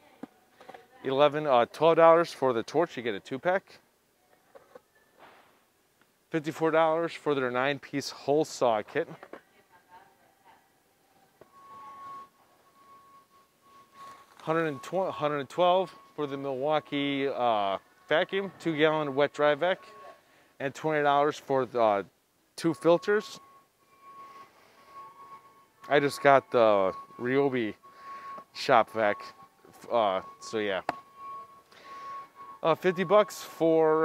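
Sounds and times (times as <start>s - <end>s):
man talking: 1.1s - 3.8s, 6.3s - 9.2s, 14.4s - 20.0s, 20.6s - 23.4s, 25.8s - 27.8s, 28.5s - 30.9s, 32.6s - 34.0s
thin steady whine: 5.6s - 34.0s
store ambience: 6.3s - 34.0s
faint high-pitched tone: 6.4s - 34.0s.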